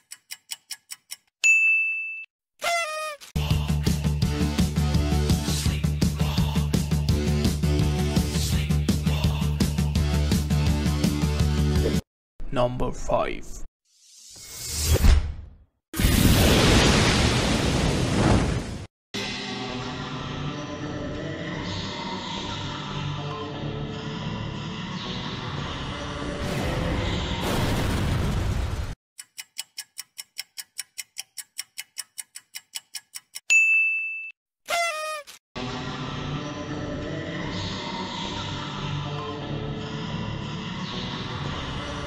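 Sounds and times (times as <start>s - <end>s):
countdown timer ticking: 0.0s - 1.3s, 29.2s - 33.6s
bright bell ding: 1.5s - 2.3s, 33.5s - 34.4s.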